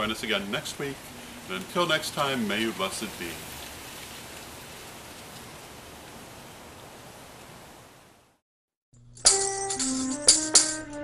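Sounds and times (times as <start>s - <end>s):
steady background hiss: 0.0s - 8.4s.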